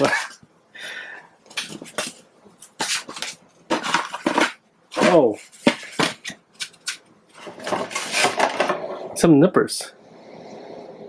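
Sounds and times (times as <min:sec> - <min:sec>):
paper and cardboard rustling: 0:01.5 - 0:09.0.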